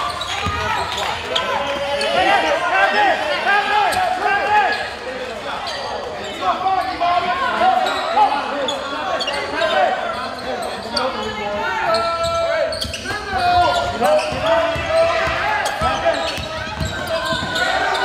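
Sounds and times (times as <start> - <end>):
sneakers squeaking: 0.0 - 2.4, 3.9 - 18.0.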